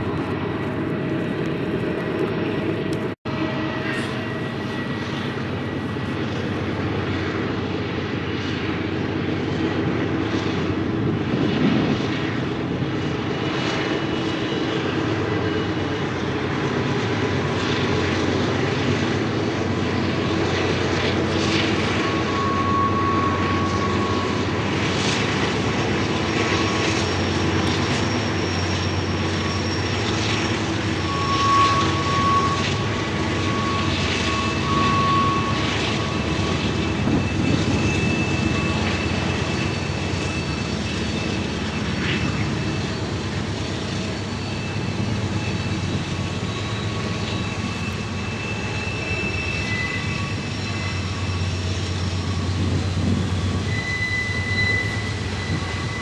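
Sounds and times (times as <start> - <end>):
diesel locomotive engines droning: 0.0 - 56.0
high squeals: 12.9 - 56.0.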